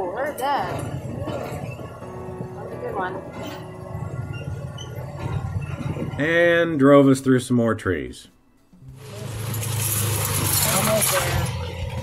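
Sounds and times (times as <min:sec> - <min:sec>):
engine humming at low speed: 0:00.7 - 0:06.3, 0:08.8 - 0:12.0
branches scraping vehicle body: 0:09.0 - 0:12.0.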